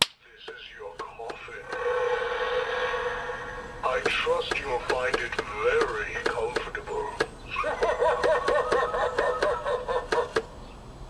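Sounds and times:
recorded voice speaking: 0:00.2 - 0:02.4, 0:03.6 - 0:07.3.

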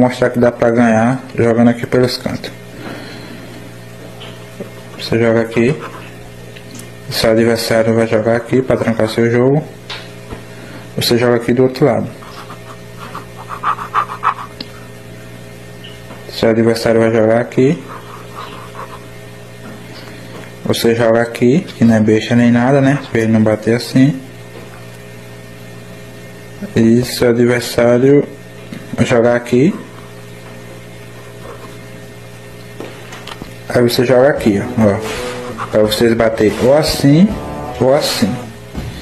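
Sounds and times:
low electrical hum: 0:00.0 - 0:39.0
ballpoint pen scratching on paper: 0:05.8 - 0:06.1, 0:12.2 - 0:14.6, 0:17.8 - 0:19.1.

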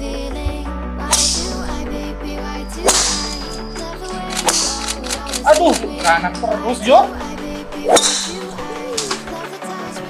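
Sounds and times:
background music with held notes: 0:00.0 - 0:10.0
golf club striking ball: 0:02.8 - 0:03.7, 0:07.2 - 0:09.3.

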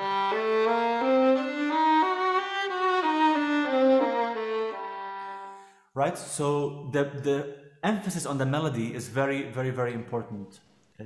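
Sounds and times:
solo violin melody: 0:00.0 - 0:05.6.

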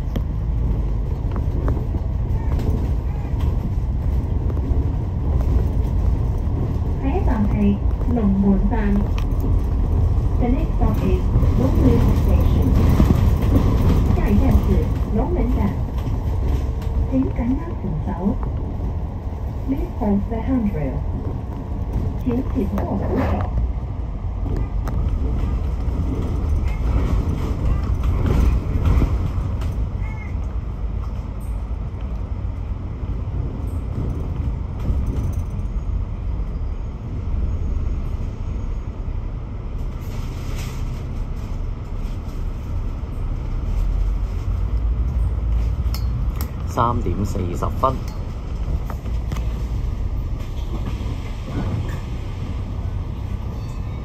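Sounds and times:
bus engine and tyres rumble: 0:00.0 - 0:54.0.

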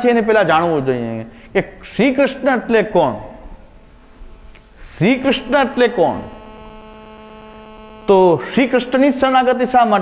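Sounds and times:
electrical hum: 0:03.3 - 0:09.8
man speaking: 0:04.8 - 0:06.4, 0:08.1 - 0:10.0.

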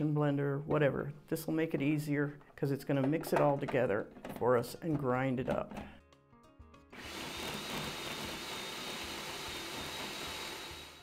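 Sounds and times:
food processor motor humming: 0:07.0 - 0:11.0.

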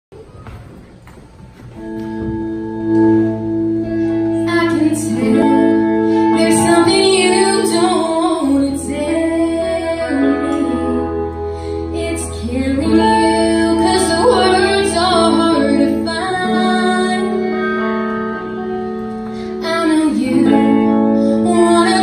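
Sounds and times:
electric guitar: 0:01.5 - 0:22.0
woman singing: 0:04.2 - 0:18.6, 0:19.5 - 0:22.0.

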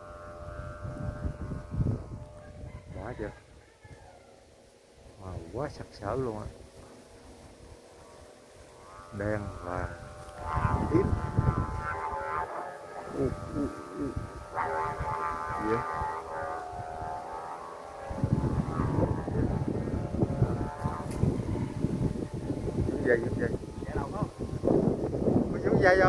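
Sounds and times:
wind buffeting microphone: 0:00.0 - 0:03.6, 0:05.1 - 0:26.0
steady tonal hum: 0:00.0 - 0:26.0.

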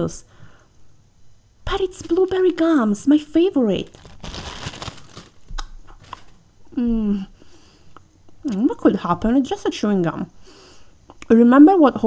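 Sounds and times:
gum packet crinkling: 0:01.8 - 0:02.7, 0:03.7 - 0:06.5.

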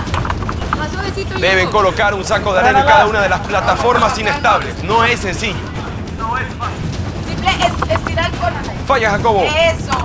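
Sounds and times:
low rumble of outdoor noise: 0:00.0 - 0:10.0.

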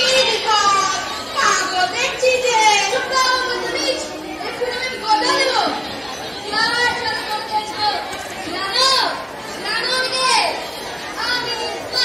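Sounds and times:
chatter: 0:00.0 - 0:12.0
children speaking: 0:00.0 - 0:12.0.

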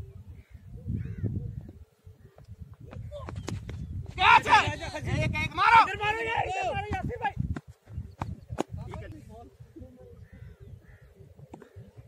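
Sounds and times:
wind rumble on microphone: 0:00.0 - 0:12.0.

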